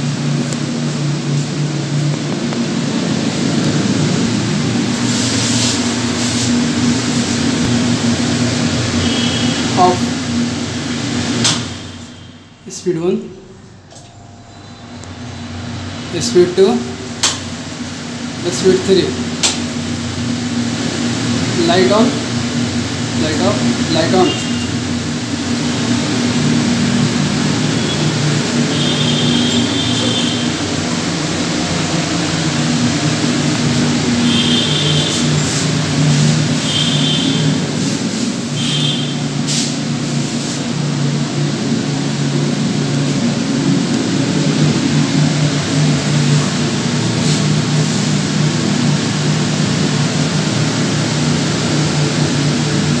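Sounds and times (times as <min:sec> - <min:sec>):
kitchen hood blower rushing: 0:00.0 - 0:53.0.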